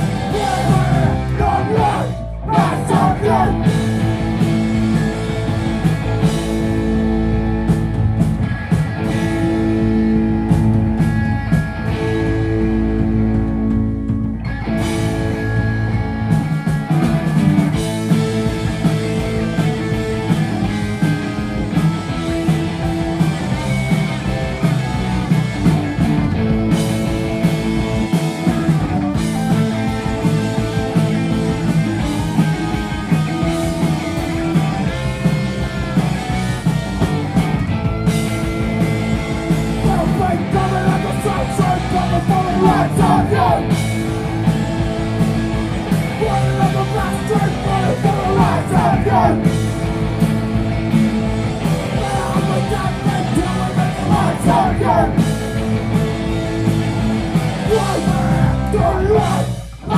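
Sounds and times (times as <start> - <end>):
electric guitar and bass chords: 0.0 - 59.9
live punk band playing: 0.0 - 59.9.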